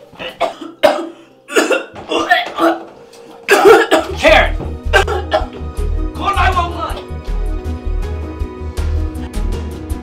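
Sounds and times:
man coughing hard: 0:00.2 - 0:02.9, 0:03.5 - 0:05.6.

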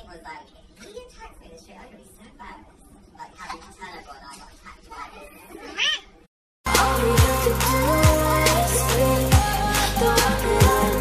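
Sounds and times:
woman speaking indistinctly: 0:00.0 - 0:05.7.

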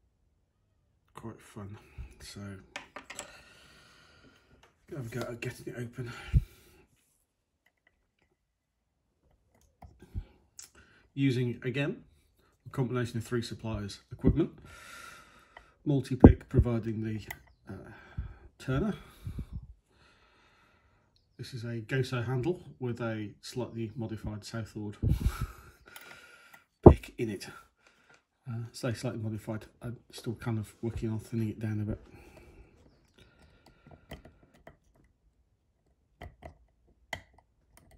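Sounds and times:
hands handling a lock: 0:02.8 - 0:03.4, 0:32.2 - 0:37.9
small metallic clicks and scrapes: 0:33.0 - 0:35.2, 0:35.8 - 0:37.9.

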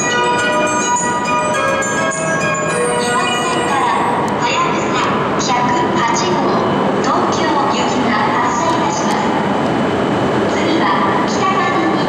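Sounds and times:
chime melody over loudspeakers: 0:00.0 - 0:04.3.

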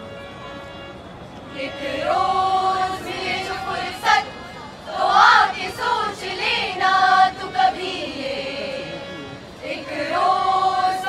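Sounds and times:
women singing in unison: 0:01.5 - 0:08.9, 0:09.6 - 0:11.0.

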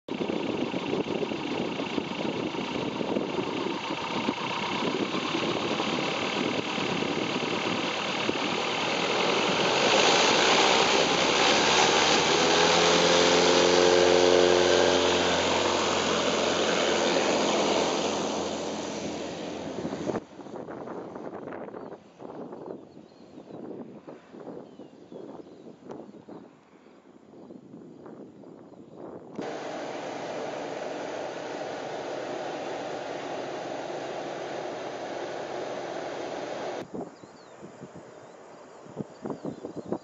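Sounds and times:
aircraft engine and propeller: 0:00.1 - 0:20.6, 0:29.3 - 0:36.9.

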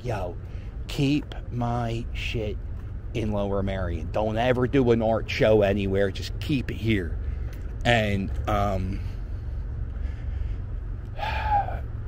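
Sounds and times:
e-scooter rumble: 0:00.0 - 0:12.0
breathy vocal sound: 0:10.0 - 0:12.0.

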